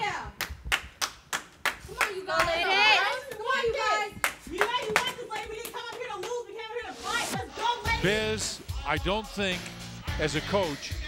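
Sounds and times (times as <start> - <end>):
hands clapping: 0.3 - 3.6, 4.2 - 6.5.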